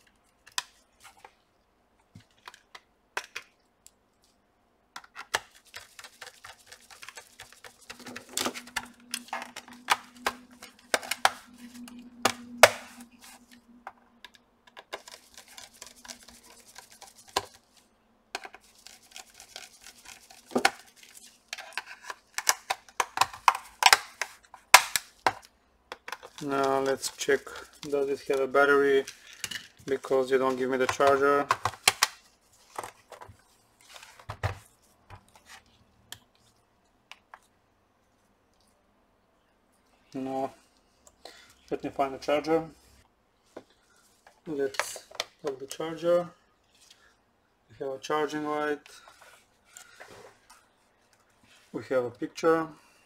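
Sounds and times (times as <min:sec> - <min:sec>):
faint steady hum: 0:00.0 - 0:47.8.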